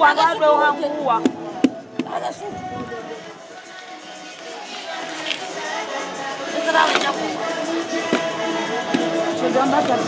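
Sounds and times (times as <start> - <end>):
people talking in background: 0.0 - 10.0.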